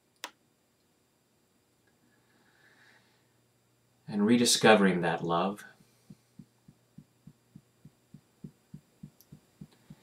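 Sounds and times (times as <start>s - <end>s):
fingertips tapping on skin: 6.1s - 10.0s.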